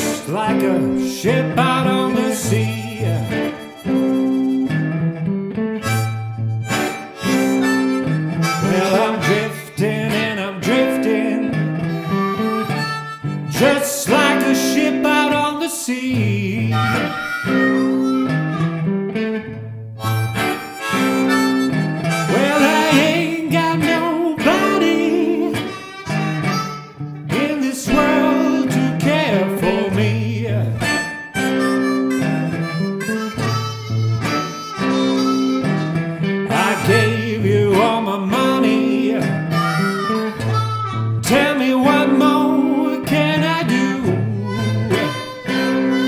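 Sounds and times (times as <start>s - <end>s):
electric guitar accompaniment: 0.0s - 46.0s
harmonica blues solo: 0.0s - 46.0s.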